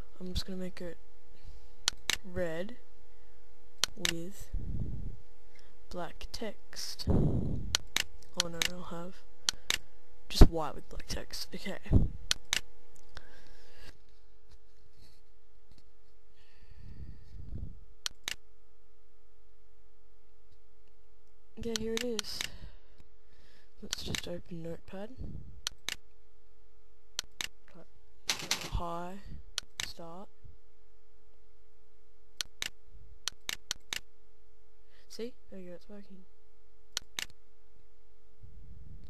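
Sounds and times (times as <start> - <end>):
faint electrical hum: 0.0 - 39.0
low rumble: 4.4 - 5.3, 7.0 - 7.8, 25.1 - 25.7
computer mouse clicks: 18.0 - 18.4, 21.6 - 22.6, 27.2 - 27.6, 32.4 - 34.1, 36.9 - 37.4.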